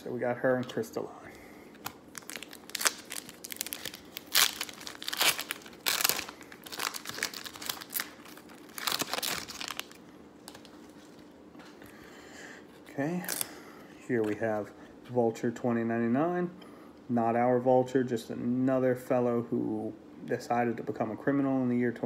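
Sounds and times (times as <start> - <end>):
foil wrapper tearing and crinkling: 2.1 - 11.2.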